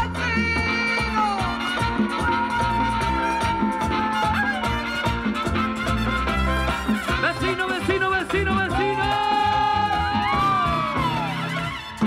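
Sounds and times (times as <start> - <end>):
live salsa band playing: 0.0 - 12.0
audience cheering: 1.4 - 5.4, 8.5 - 12.0.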